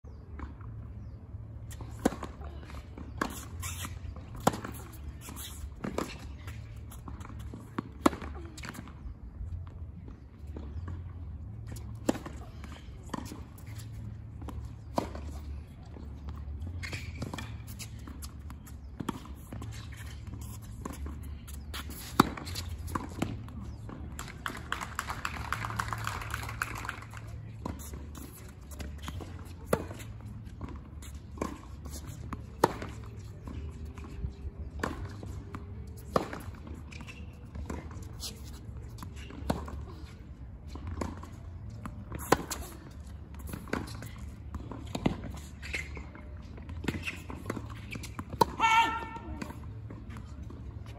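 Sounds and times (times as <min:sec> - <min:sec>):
tennis balls struck by rackets: 0:00.4 - 0:50.9
light applause: 0:24.2 - 0:27.3.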